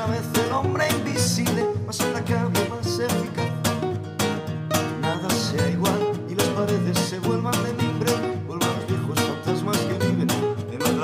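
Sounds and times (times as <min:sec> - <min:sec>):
classical guitar strumming chords: 0:00.0 - 0:11.0
guitar picked notes: 0:00.0 - 0:11.0.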